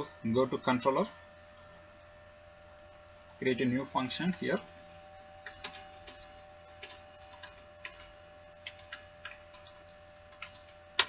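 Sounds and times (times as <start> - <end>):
faint steady hum: 0.0 - 11.0
computer keyboard typing: 2.7 - 3.4, 5.4 - 11.0.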